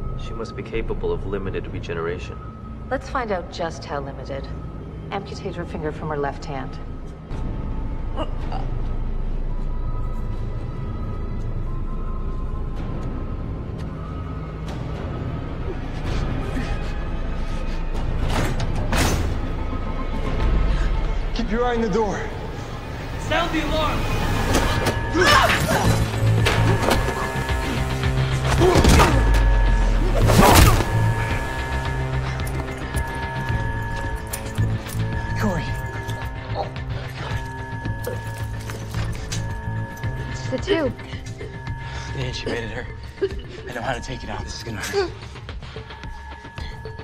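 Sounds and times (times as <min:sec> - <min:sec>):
low drone: 0:06.7 - 0:47.0
low pulsing throb: 0:19.3 - 0:47.0
long held high tones: 0:22.1 - 0:47.0.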